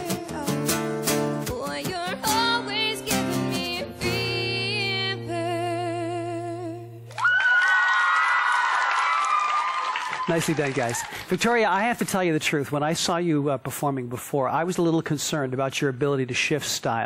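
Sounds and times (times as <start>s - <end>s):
acoustic guitar: 0.0s - 7.1s
woman singing pop song: 0.0s - 7.1s
audience cheering: 7.1s - 11.4s.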